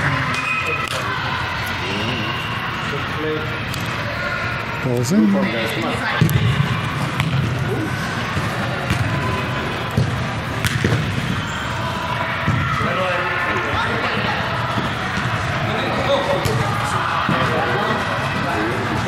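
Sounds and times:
indistinct voices: 0.0 - 19.0
soccer ball kick thuds: 6.2 - 7.7, 8.3 - 11.4, 12.4 - 12.8.

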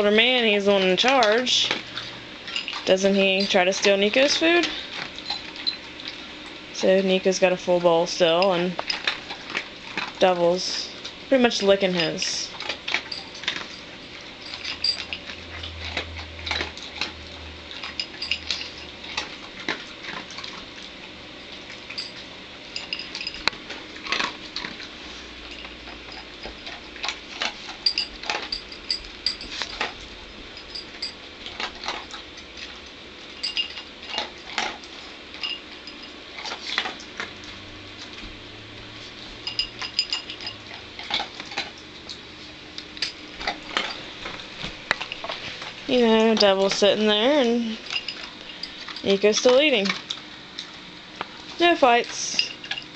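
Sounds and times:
dogs chewing and licking: 0.0 - 52.9
food bowl clinking: 21.8 - 24.7, 33.4 - 34.7, 39.4 - 41.8, 43.0 - 50.2.

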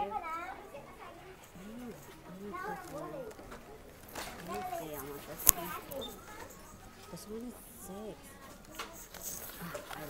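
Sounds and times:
background voices: 1.2 - 10.0
person speaking: 4.3 - 6.2.

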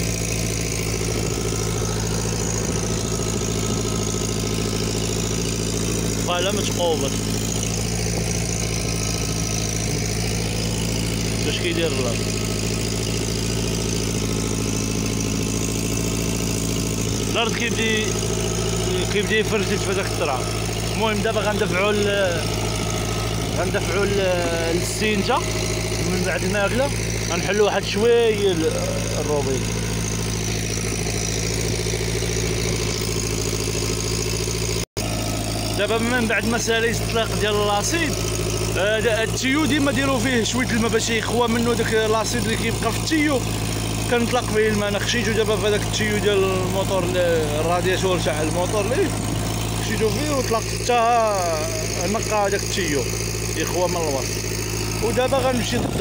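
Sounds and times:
engine running steadily: 0.0 - 56.0.

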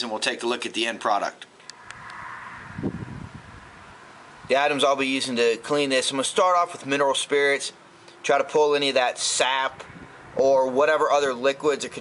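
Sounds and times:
short low rumble: 1.8 - 4.0.

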